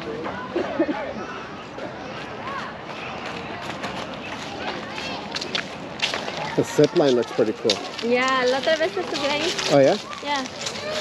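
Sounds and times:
distant indistinct voices: 0.0 - 11.0
footsteps on a path: 2.1 - 11.0.

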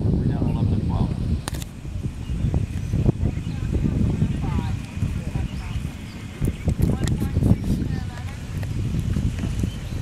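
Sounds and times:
horse galloping on grass: 2.8 - 10.0.

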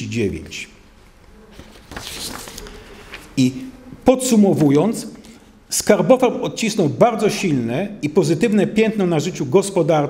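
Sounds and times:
paper sheets rustling: 1.4 - 3.6.

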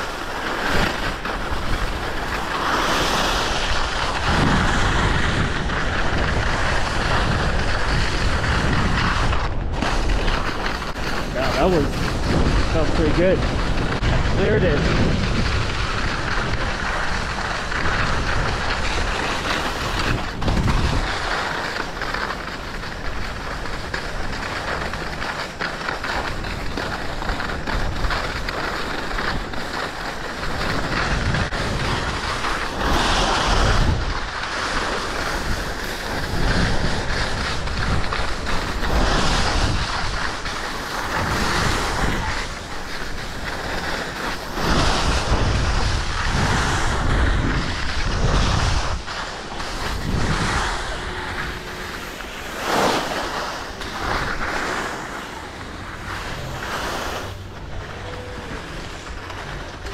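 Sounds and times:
skis scraping over snow: 0.0 - 59.9
wind on microphone: 0.0 - 59.9.

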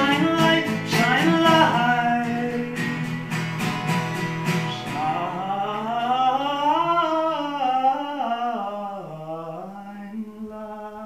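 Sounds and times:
man singing a long note: 4.7 - 11.0.

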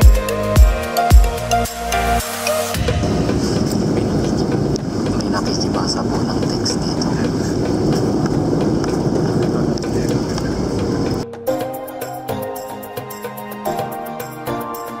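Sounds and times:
jet cabin engine roar: 2.8 - 11.2
faint voices: 3.8 - 11.2.

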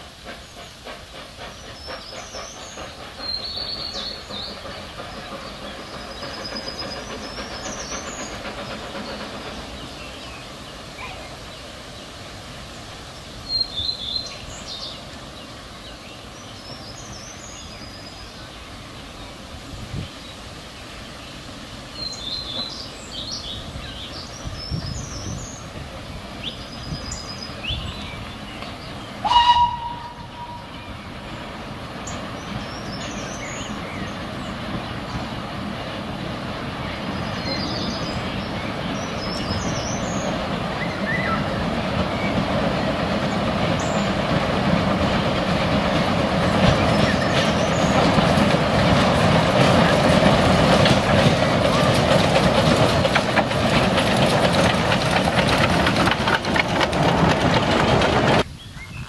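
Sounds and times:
steam train rumbling: 0.0 - 59.0
steam locomotive whistle: 29.2 - 30.8.

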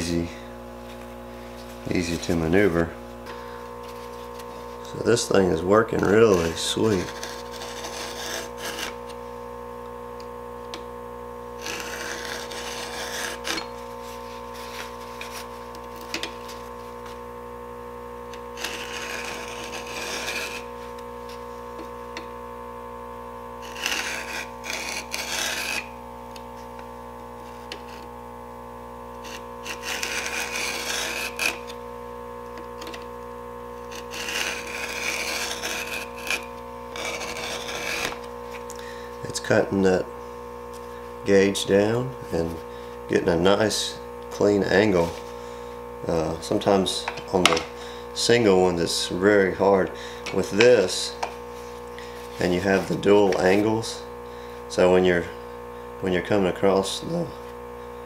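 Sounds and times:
file rasping on chainsaw chain: 6.0 - 9.0, 11.6 - 13.7, 18.6 - 20.7, 23.6 - 25.9, 29.2 - 31.7, 33.9 - 38.2.

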